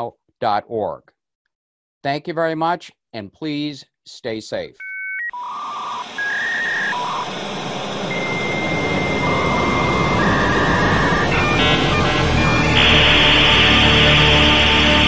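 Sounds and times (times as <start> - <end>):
electronic beeps: 4.8 - 15.0.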